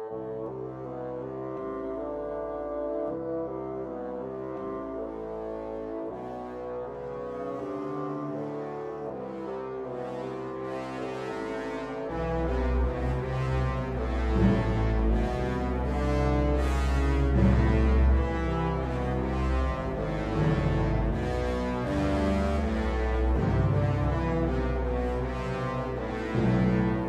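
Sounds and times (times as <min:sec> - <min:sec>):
slow low brass and strings music: 0:00.0 - 0:27.0.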